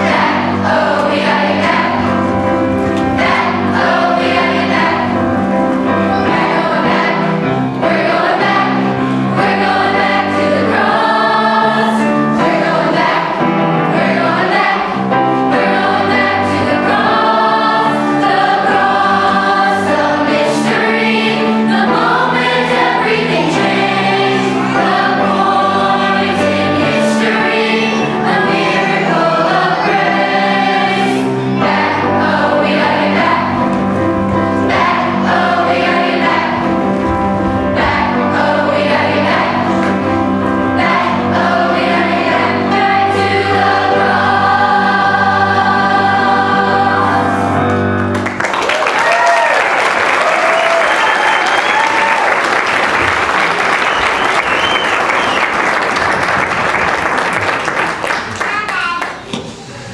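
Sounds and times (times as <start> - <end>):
instrumental accompaniment: 0.0 - 48.4
children's choir singing: 0.0 - 59.9.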